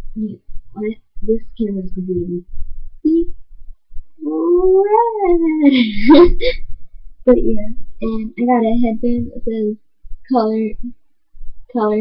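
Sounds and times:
girl's wordless call: 0.2s - 3.4s, 4.2s - 5.7s.

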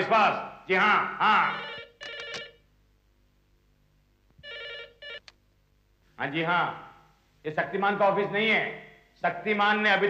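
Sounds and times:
desk telephone ringing: 1.4s - 2.7s, 4.4s - 5.3s.

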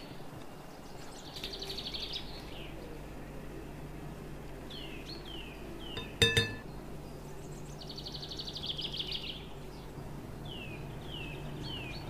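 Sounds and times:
plastic spoon clinking glass bowl: 6.0s - 6.6s.

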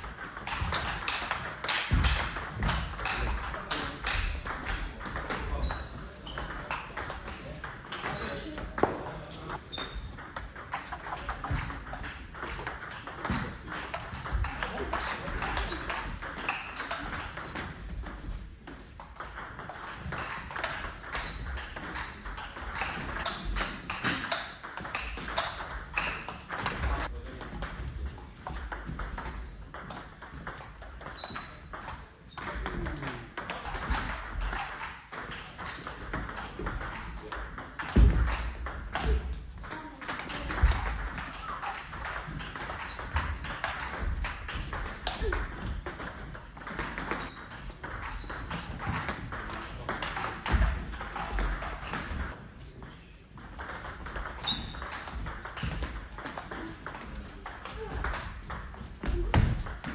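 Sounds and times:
table tennis ball clicking: 9.6s - 59.9s.

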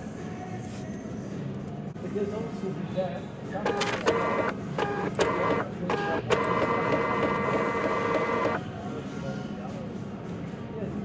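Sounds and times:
printer motor whining: 3.6s - 8.6s.

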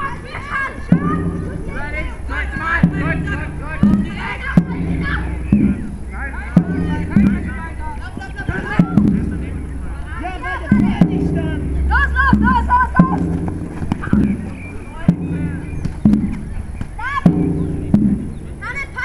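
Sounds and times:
drum beats ringing: 0.0s - 19.0s
players shouting: 0.0s - 19.0s.

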